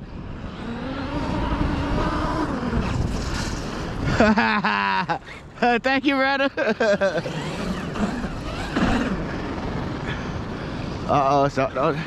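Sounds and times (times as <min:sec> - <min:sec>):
rush of tyres and sand: 0:00.0 - 0:05.6
electric motor whining: 0:00.4 - 0:04.0, 0:07.0 - 0:11.0.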